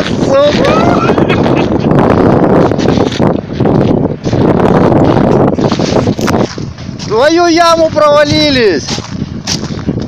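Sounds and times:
all-terrain vehicle running: 0.0s - 10.0s
wind buffeting microphone: 0.0s - 10.0s.

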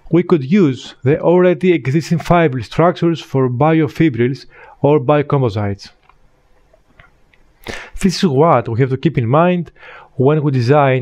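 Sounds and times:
man speaking: 0.0s - 6.0s, 7.7s - 11.0s
sharp intake of breath: 4.5s - 4.8s, 7.6s - 8.0s, 9.8s - 10.2s.

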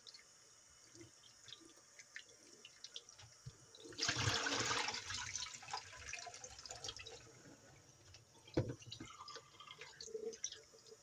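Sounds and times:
water drips and splashes: 0.0s - 4.5s
thin stream of tap water: 0.0s - 11.0s
rush of water into sink: 3.9s - 7.3s.

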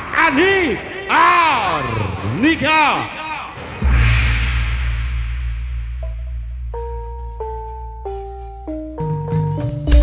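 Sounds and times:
cymbal crash: 3.6s - 7.2s
sustained deep bass note: 3.8s - 8.1s
keyboard bell-like melody: 6.8s - 10.0s.

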